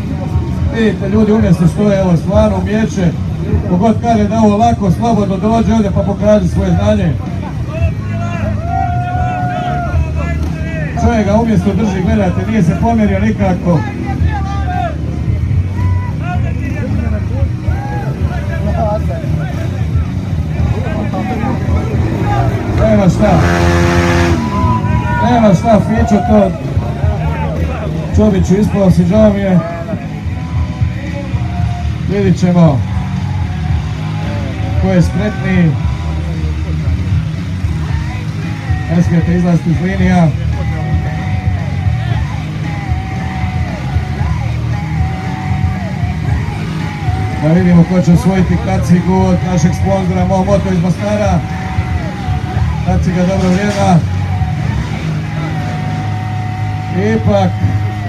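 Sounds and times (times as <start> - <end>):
crowd voices: 0.0 - 58.0
motorcycle engines idling: 0.0 - 58.0
music from a sound system: 29.5 - 58.0.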